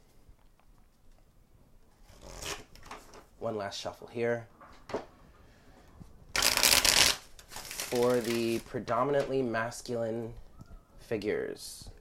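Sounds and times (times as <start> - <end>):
playing cards being shuffled: 6.4 - 8.7.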